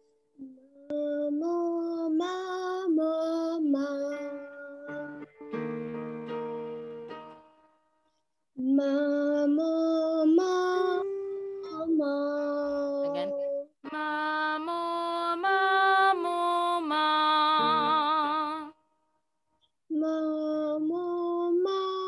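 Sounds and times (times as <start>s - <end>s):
woman singing vocal warm-up: 8.6s - 18.8s.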